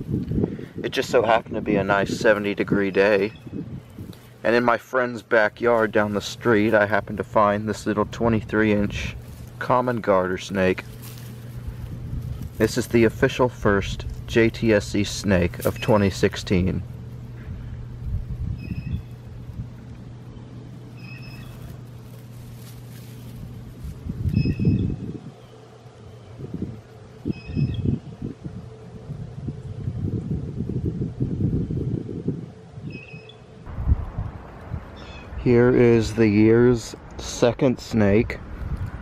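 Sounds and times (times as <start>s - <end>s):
low rustling and rumbling: 0.0s - 39.0s
bird chirping: 2.9s - 4.1s, 20.3s - 21.8s, 27.2s - 28.2s, 32.8s - 33.5s.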